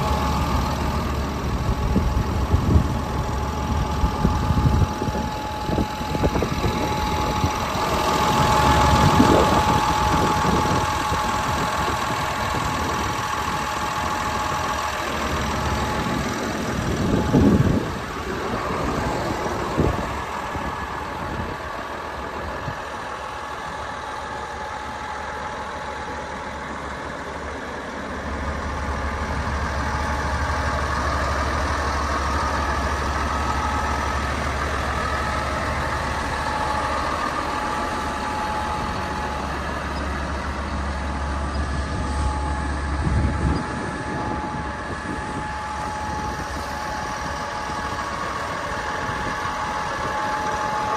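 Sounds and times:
deep low rumble: 0.0 - 22.8, 28.3 - 50.4
constant whine: 0.0 - 50.9
diesel engine idling: 0.0 - 50.9.

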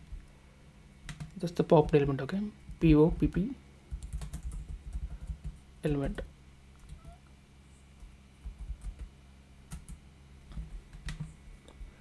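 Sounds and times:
computer keyboard typing: 1.0 - 2.0, 3.9 - 5.6, 6.8 - 7.2, 8.0 - 9.1, 9.7 - 11.4.

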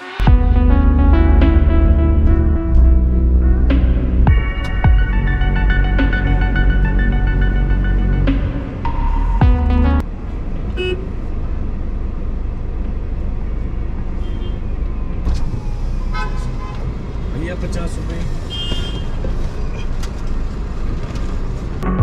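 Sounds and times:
car rumbling in slow traffic: 0.4 - 22.0
car horn toot: 16.1 - 16.8, 18.5 - 19.2.

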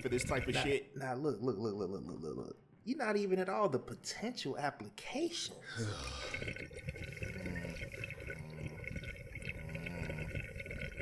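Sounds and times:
water bubbling in a bong: 0.0 - 0.8, 5.6 - 11.0.

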